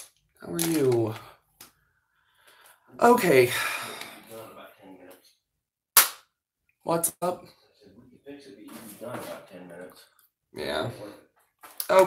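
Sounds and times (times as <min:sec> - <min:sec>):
sharp snap: 0:06.0 - 0:06.3.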